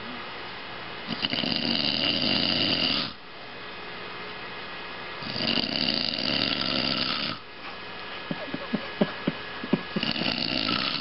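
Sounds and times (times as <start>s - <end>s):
man snoring loudly: 1.1s - 3.2s, 5.2s - 7.4s, 9.9s - 11.0s.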